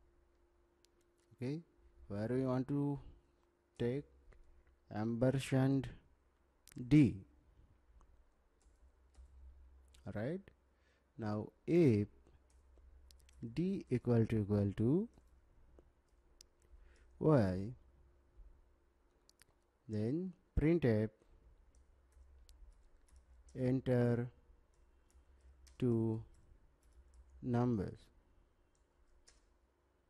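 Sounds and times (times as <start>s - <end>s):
person speaking: 6.6s - 7.3s, 11.2s - 12.5s, 13.1s - 15.3s, 16.4s - 17.9s, 19.3s - 21.2s, 23.4s - 24.4s, 25.7s - 26.4s, 27.3s - 28.2s
computer keyboard keys clicking: 21.7s - 23.6s, 24.7s - 27.4s, 28.7s - 29.5s
keyboard clicks: 21.7s - 23.6s, 28.7s - 29.5s.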